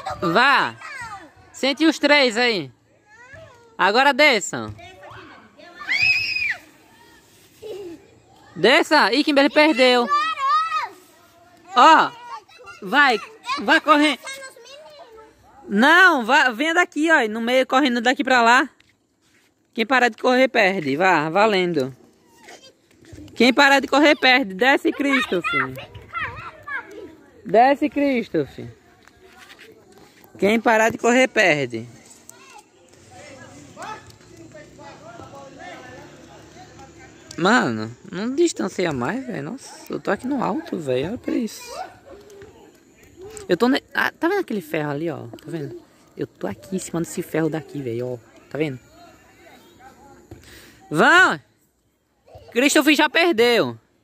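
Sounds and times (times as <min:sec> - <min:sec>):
children calling and shouting: 0:00.0 - 0:17.1, 0:20.7 - 0:54.0.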